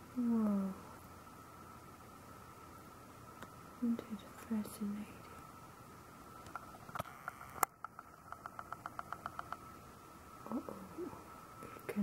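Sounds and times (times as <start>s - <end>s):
faint steady whine: 0.0s - 12.0s
person humming softly: 0.1s - 0.9s, 10.5s - 12.0s.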